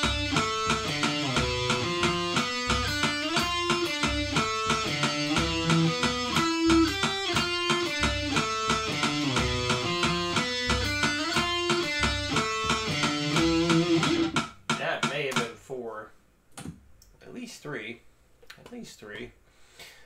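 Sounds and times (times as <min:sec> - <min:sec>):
electric guitar melody: 0:00.0 - 0:14.4
metronome clicking: 0:00.0 - 0:15.5.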